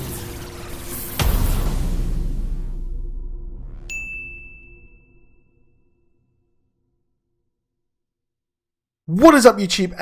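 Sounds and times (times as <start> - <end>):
low rumble: 1.2 - 5.2
bright ding: 3.9 - 6.0.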